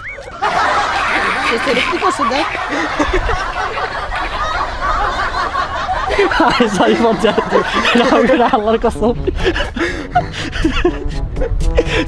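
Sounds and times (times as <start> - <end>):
men laughing: 0.0 - 12.0
men talking: 0.6 - 9.6.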